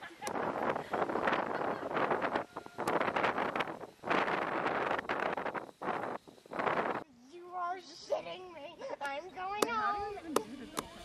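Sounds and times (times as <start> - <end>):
wind buffeting microphone: 0.2 - 7.0.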